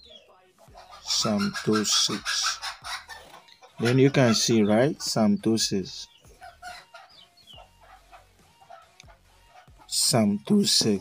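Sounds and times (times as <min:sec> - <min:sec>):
soft animal calls: 0:00.6 - 0:05.3, 0:06.0 - 0:10.2.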